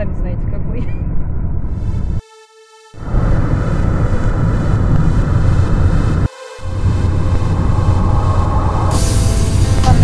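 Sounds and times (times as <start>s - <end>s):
road and wind noise inside car: 0.0s - 2.2s, 3.0s - 10.0s.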